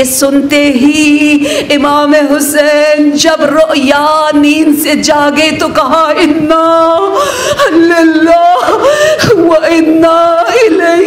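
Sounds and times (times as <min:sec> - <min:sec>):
woman chanting a lament: 0:00.0 - 0:11.0.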